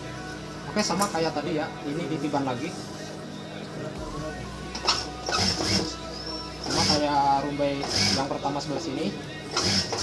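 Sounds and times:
background music: 0.0 - 10.0
sewing machine stitching: 4.9 - 5.9, 6.6 - 7.0, 7.8 - 8.3, 9.6 - 10.0.

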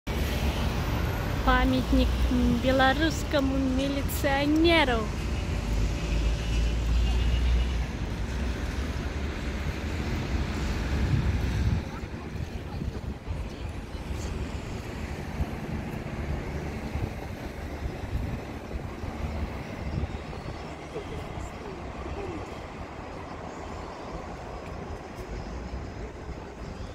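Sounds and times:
street traffic hum: 0.0 - 26.9
wind rumbling on microphone: 6.9 - 26.9.

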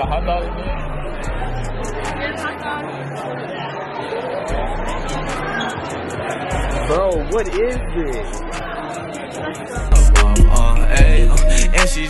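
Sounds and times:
chatter of many people: 0.0 - 12.0
faint music: 0.0 - 12.0.

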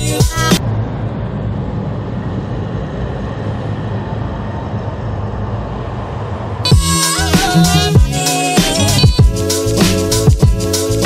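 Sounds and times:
music: 0.0 - 0.6, 6.7 - 11.0
tram rumbling: 0.0 - 11.0.

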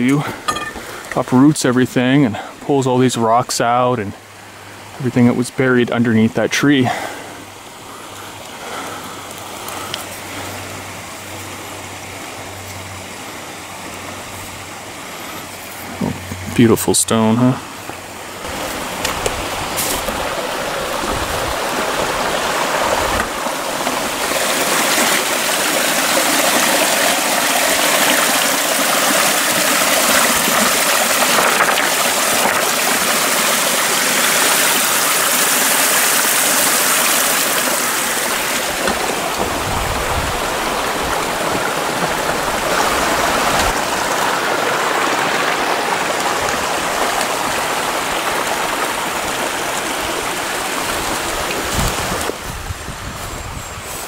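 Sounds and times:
creek splashing over rocks: 0.0 - 52.5.

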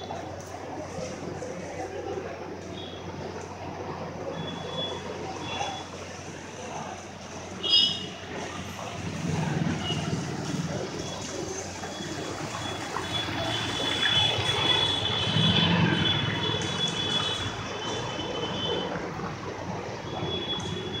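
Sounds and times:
vehicles passing on wet street: 0.0 - 21.0.

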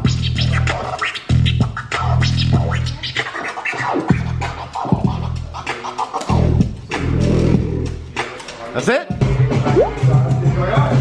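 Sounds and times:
vinyl record scratching: 0.0 - 6.5.

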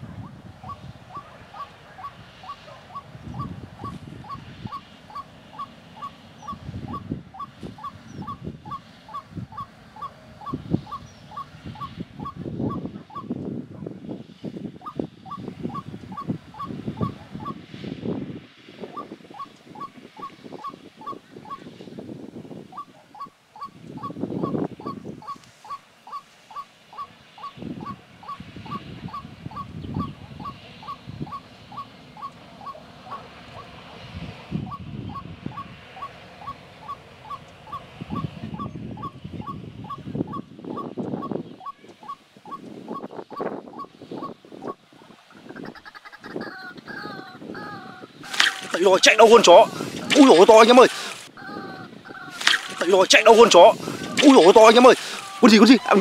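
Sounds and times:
lower pulsed animal calls: 0.0 - 13.3, 18.9 - 21.7, 22.7 - 33.9, 34.6 - 44.8, 45.4 - 56.0.

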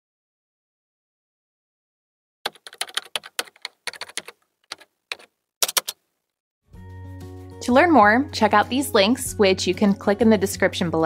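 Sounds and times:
keyboard typing: 2.5 - 6.0.

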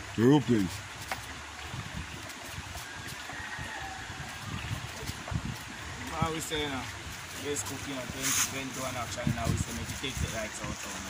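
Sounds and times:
stream running over rocks: 0.0 - 11.0.

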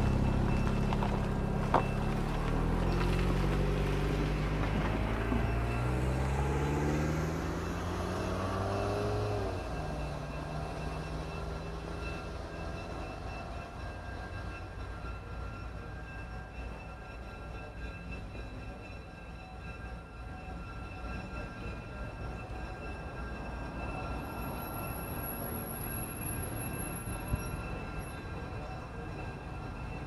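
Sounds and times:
passenger train passing on rails: 0.0 - 30.0.

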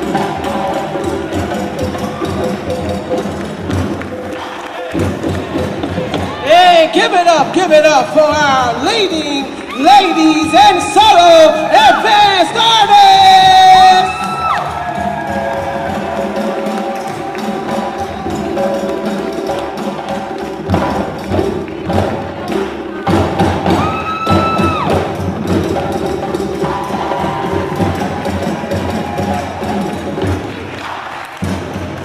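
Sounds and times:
hand drums playing rhythm: 0.0 - 32.0.

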